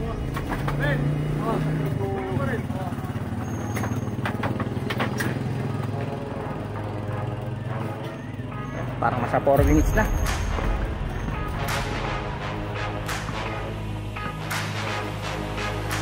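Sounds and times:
people talking: 0:00.0 - 0:03.1, 0:09.0 - 0:10.2
small engine droning: 0:00.0 - 0:09.4.

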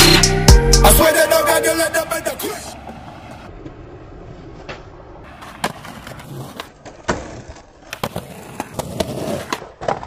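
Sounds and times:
skateboard rolling on concrete: 0:01.0 - 0:10.0
skateboard clacking: 0:01.1 - 0:10.0.

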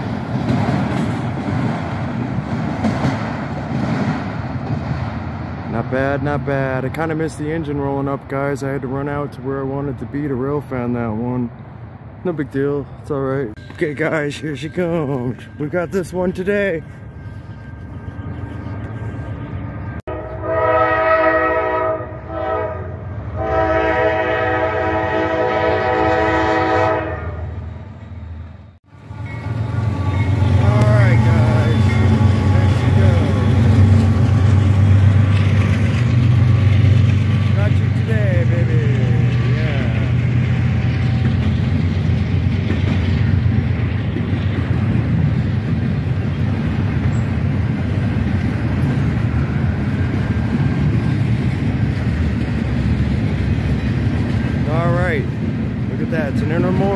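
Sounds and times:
diesel locomotive engine rumble: 0:00.0 - 0:56.9
train cars rolling: 0:00.0 - 0:56.9
train horn blasts: 0:20.1 - 0:27.6.

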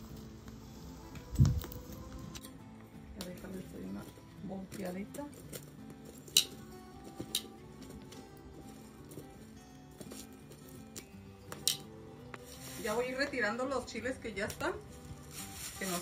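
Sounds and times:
background music: 0:00.0 - 0:16.0
metal tongs clinking: 0:11.6 - 0:11.9.

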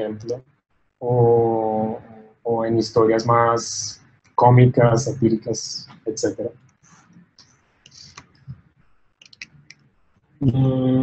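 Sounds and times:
computer mouse clicks: 0:09.2 - 0:09.9.

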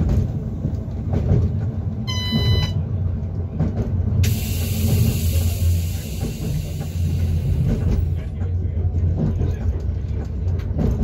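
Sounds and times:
train cab hum: 0:00.0 - 0:11.0
wheels clicking on rails: 0:00.0 - 0:11.0.

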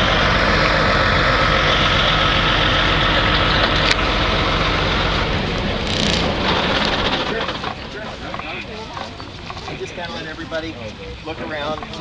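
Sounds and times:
low rumble: 0:00.0 - 0:09.9
people talking: 0:00.0 - 0:12.0
clicks and clatter: 0:05.8 - 0:09.8.

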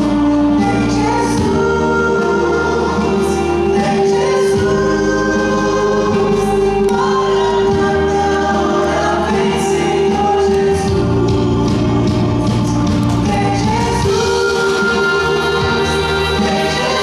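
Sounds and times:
acoustic guitar: 0:00.0 - 0:17.0
electric bass: 0:00.0 - 0:17.0
people singing in harmony: 0:00.0 - 0:17.0.

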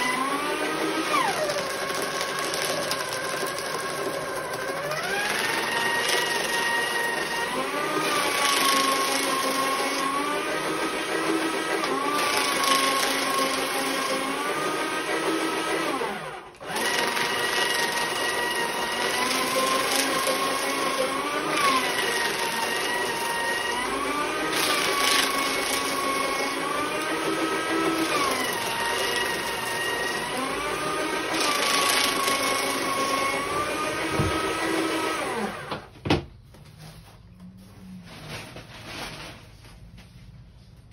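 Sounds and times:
paper shredder cutting sheets: 0:00.0 - 0:35.9, 0:38.0 - 0:39.5.

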